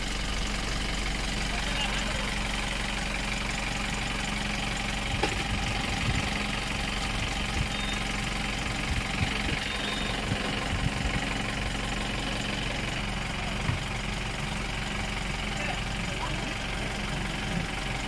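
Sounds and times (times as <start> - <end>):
engine humming: 0.0 - 18.0.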